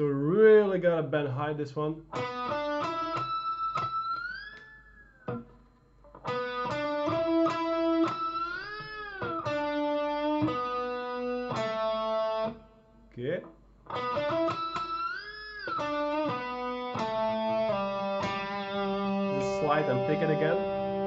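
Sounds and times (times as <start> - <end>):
electric guitar lead: 2.1 - 12.7, 13.8 - 21.0
guitar string noise: 13.9 - 21.0.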